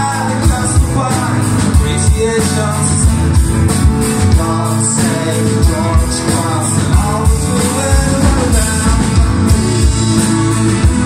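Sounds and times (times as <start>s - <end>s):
guitars: 0.0s - 11.0s
keyboard: 0.0s - 11.0s.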